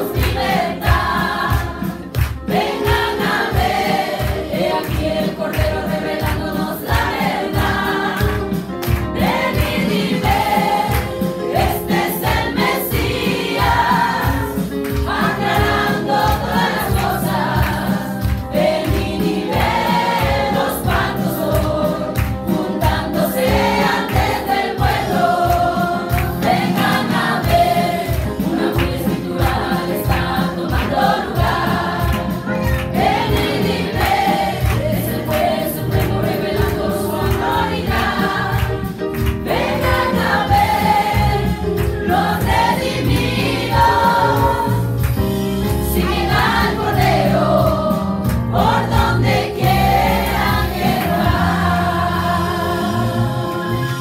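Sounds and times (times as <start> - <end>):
women singing a hymn: 0.0 - 45.0, 45.7 - 54.0.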